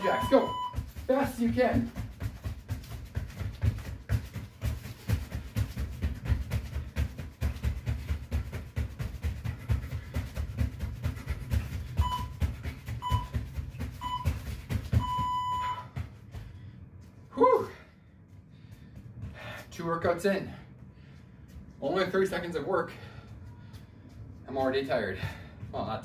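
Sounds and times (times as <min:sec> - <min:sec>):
interval timer beeps: 0:00.0 - 0:00.9, 0:12.0 - 0:16.0.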